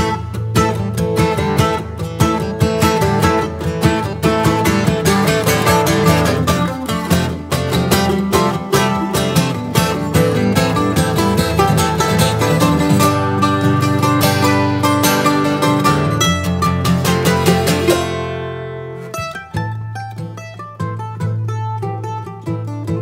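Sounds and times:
acoustic guitar chords: 0:00.0 - 0:23.0
mandolin picked notes: 0:00.0 - 0:23.0.

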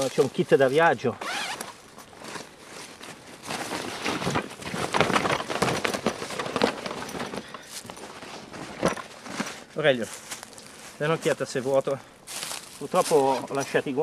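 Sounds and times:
nylon bag and clothes rustling: 0:00.0 - 0:14.0
items dropped on dry leaves: 0:01.6 - 0:11.4.

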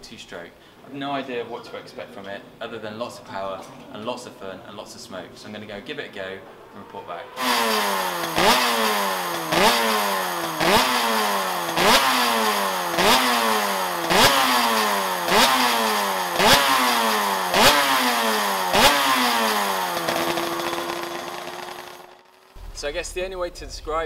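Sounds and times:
two-stroke engine revving: 0:06.2 - 0:22.7.

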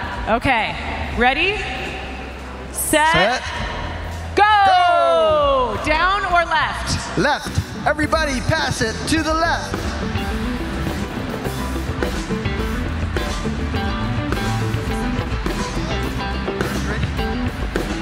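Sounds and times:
band playing music: 0:08.1 - 0:18.0.

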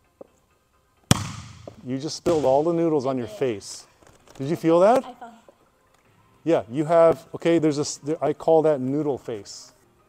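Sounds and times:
palm slapping a volleyball: 0:01.1 - 0:02.7.

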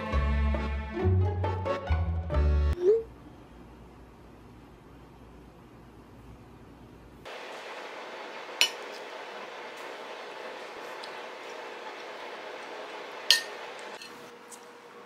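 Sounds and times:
cutlery clinking on plate: 0:08.6 - 0:08.9, 0:13.3 - 0:14.2.

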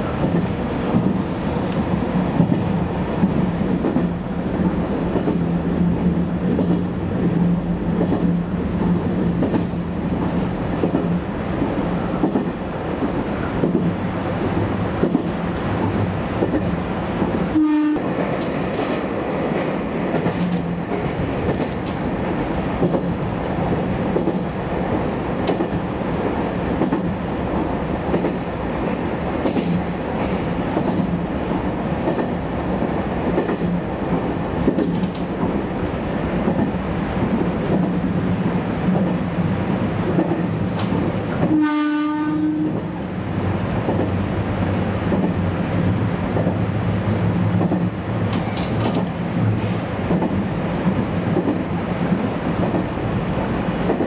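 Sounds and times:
rail-joint clatter: 0:00.0 - 0:27.3, 0:28.1 - 0:38.0, 0:40.0 - 0:41.6, 0:47.5 - 0:52.9, 0:53.8 - 0:54.0
diesel railcar running: 0:00.0 - 0:54.0
train horn: 0:17.5 - 0:18.1, 0:41.4 - 0:42.9.

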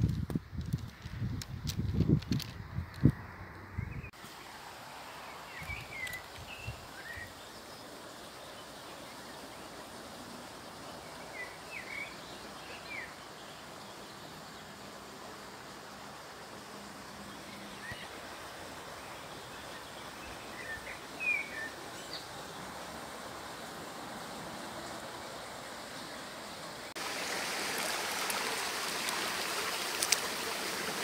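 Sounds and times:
outdoor background hiss: 0:00.0 - 0:31.0
shallow stream running: 0:04.1 - 0:31.0.

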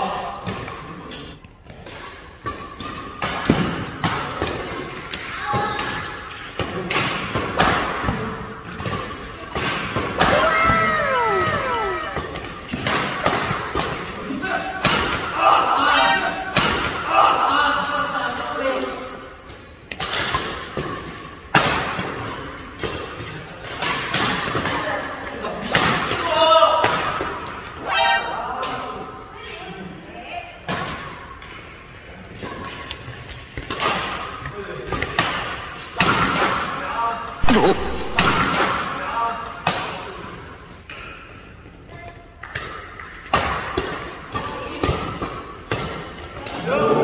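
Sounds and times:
rackets hitting shuttlecock: 0:00.4 - 0:14.1, 0:37.4 - 0:39.0, 0:42.4 - 0:46.6
shoe squeak: 0:09.5 - 0:09.8.

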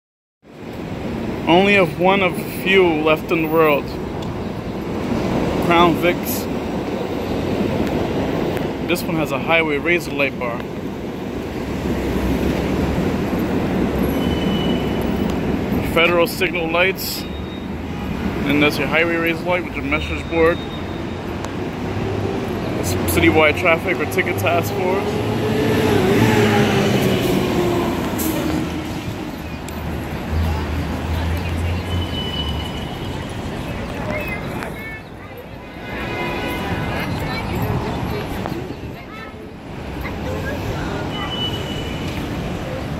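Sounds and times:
low city street rumble: 0:00.4 - 0:42.9
traffic noise: 0:00.4 - 0:42.9
passing vehicle engine hum: 0:21.4 - 0:34.7
subway train rumble: 0:21.5 - 0:33.6.

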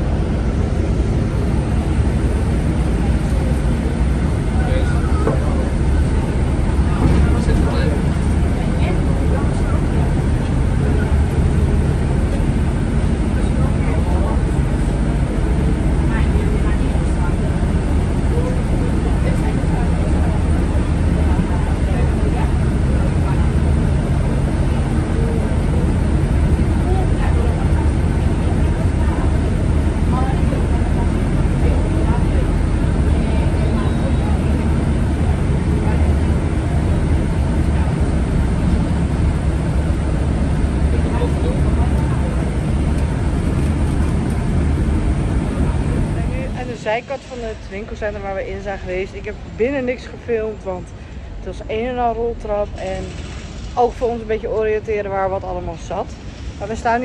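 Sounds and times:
bus engine and tyres rumbling: 0:00.0 - 0:57.0
indistinct passenger voices: 0:00.0 - 0:57.0.

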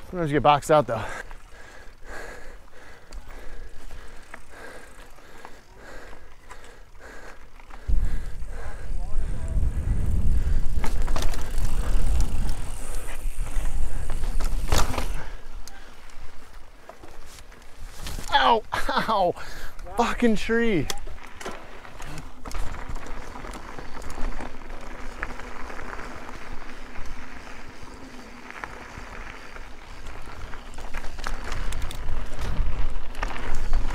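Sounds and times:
bike rattling and clicking: 0:00.0 - 0:33.9
tyres and wind rumbling: 0:00.0 - 0:33.9.

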